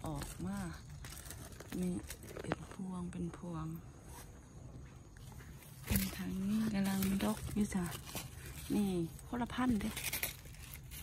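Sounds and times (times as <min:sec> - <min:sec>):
leaves rustling against microphone: 0:00.0 - 0:11.0.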